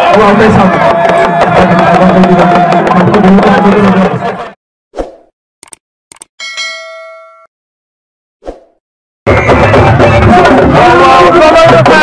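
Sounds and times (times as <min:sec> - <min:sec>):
quick clicks: 0:05.6 - 0:06.3
bell-like ding: 0:06.4 - 0:07.5
loud dense drumming: 0:09.3 - 0:12.0.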